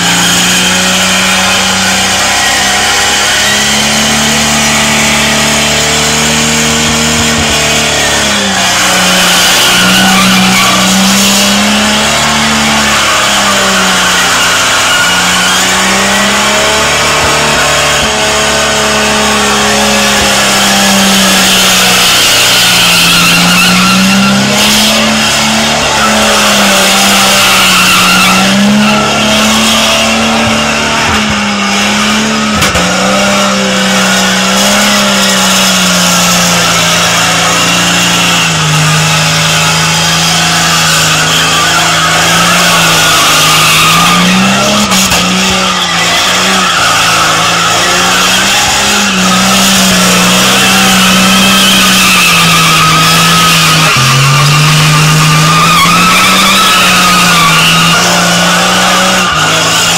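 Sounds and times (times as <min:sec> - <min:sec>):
car engine at high revs: 0:00.0 - 0:59.9
spinning tyres squealing: 0:00.0 - 0:59.9.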